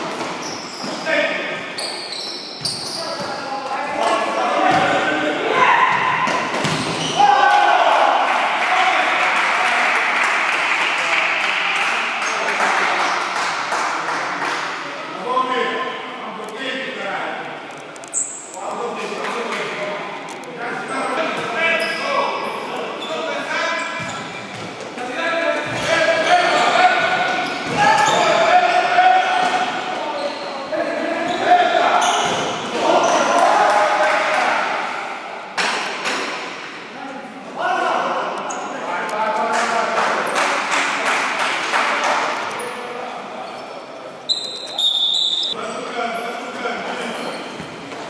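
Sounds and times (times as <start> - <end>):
ball kicks and bounces: 5.9 - 7.0.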